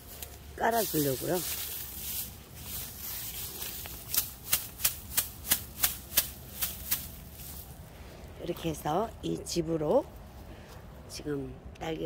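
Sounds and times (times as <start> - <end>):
dry straw rustling and crackling: 0.0 - 10.9.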